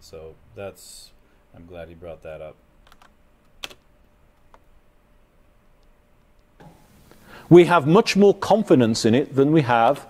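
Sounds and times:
low hiss: 0:00.0 - 0:10.0.

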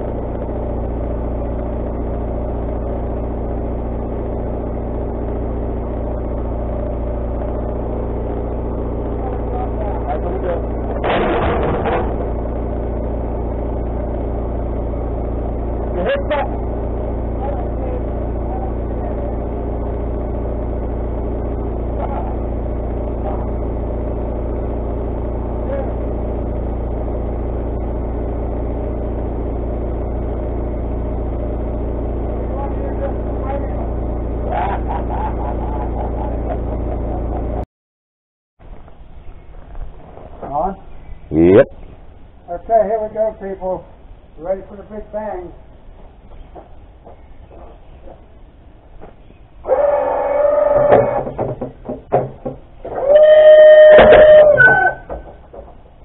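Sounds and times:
sawmill engine running: 0:00.0 - 0:37.6, 0:38.7 - 0:56.0.

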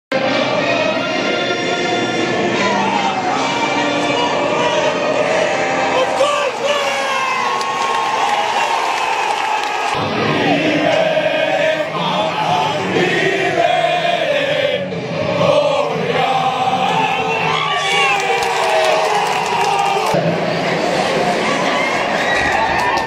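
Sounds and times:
crowd singing and chanting: 0:00.1 - 0:07.5, 0:09.4 - 0:23.0
music with singing voices: 0:00.1 - 0:07.5, 0:09.9 - 0:22.4.

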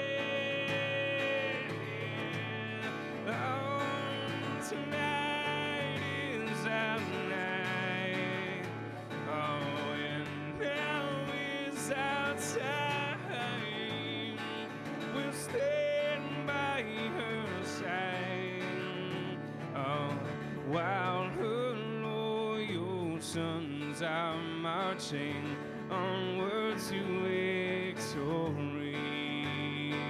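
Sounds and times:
man singing: 0:00.0 - 0:30.0
strummed acoustic guitar: 0:00.0 - 0:30.0.

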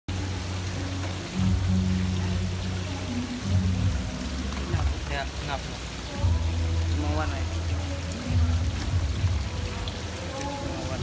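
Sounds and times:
music with low bass line: 0:00.1 - 0:11.0
running water hiss: 0:00.1 - 0:11.0.

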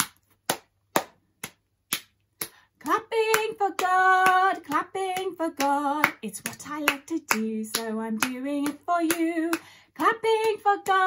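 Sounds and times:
person clapping hands: 0:00.0 - 0:11.0.

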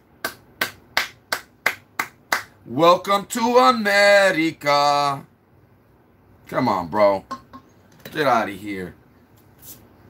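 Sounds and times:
hand claps or snaps: 0:00.1 - 0:02.6.

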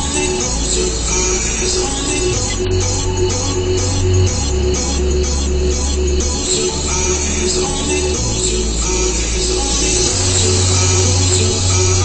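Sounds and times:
song with sustained bass note: 0:00.0 - 0:12.0.

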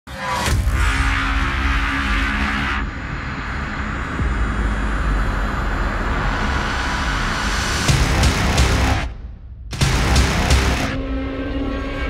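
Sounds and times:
deep bass: 0:02.8 - 0:11.0.

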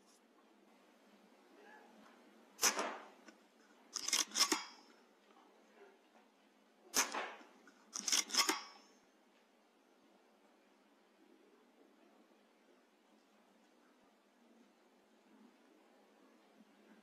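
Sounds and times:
air rifle shot crack: 0:02.6 - 0:03.1.

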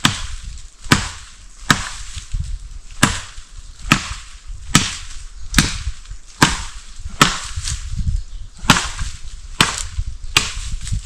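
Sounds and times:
wood being chopped: 0:00.0 - 0:07.9, 0:08.6 - 0:11.0.

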